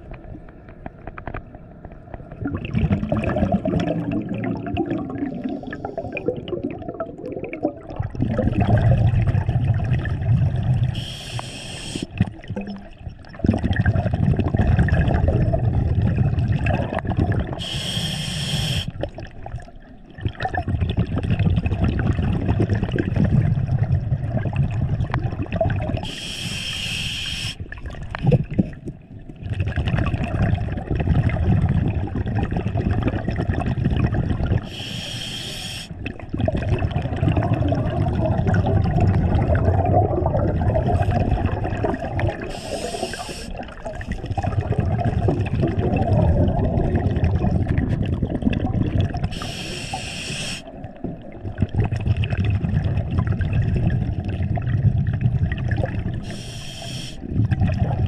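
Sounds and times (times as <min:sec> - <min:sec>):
exhaled bubbles rumbling: 0:00.0 - 0:11.3, 0:12.0 - 0:26.3, 0:27.6 - 0:34.9, 0:35.9 - 0:49.7, 0:50.7 - 0:56.6, 0:57.2 - 0:58.0
diver inhaling through regulator: 0:05.4 - 0:06.4, 0:10.9 - 0:12.2, 0:17.5 - 0:19.0, 0:26.0 - 0:27.6, 0:34.6 - 0:36.0, 0:42.4 - 0:44.2, 0:49.3 - 0:50.8, 0:56.2 - 0:57.3.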